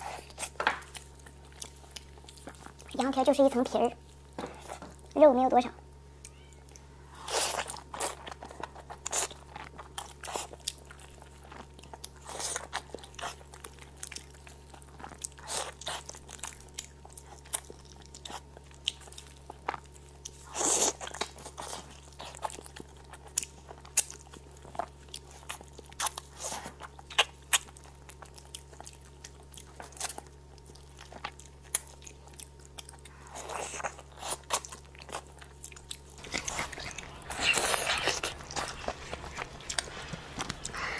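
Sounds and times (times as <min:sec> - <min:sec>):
biting and chewing meat: 0:00.0 - 0:05.2, 0:06.2 - 0:40.9.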